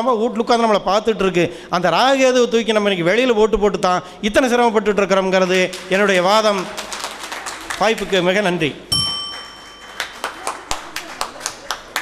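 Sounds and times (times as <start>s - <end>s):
audience hand clapping: 5.4s - 12.0s
sharp metallic ding: 8.9s - 10.0s.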